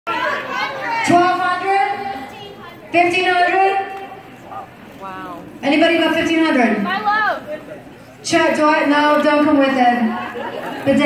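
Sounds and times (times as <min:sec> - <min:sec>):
audience chatter: 0:00.1 - 0:11.0.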